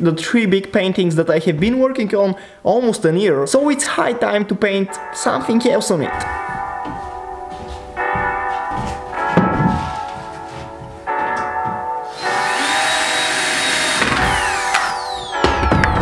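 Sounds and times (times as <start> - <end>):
background music: 0.0 - 16.0
cordless drill running: 12.1 - 15.6.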